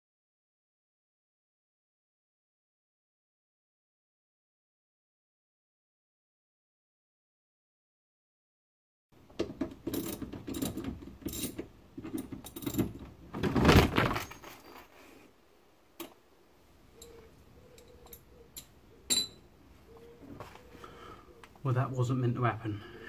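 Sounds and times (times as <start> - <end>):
screws and tools rattling: 9.5 - 15.0.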